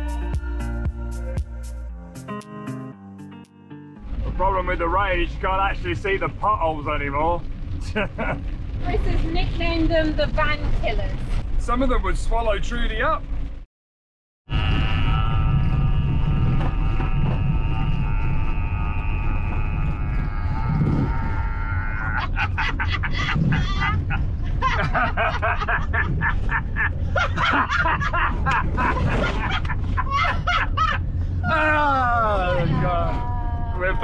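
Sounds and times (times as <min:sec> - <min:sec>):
held musical tones: 0:00.0 - 0:04.2
van driving on gravel: 0:04.0 - 0:13.6, 0:15.4 - 0:34.0
two people laughing: 0:21.5 - 0:31.1.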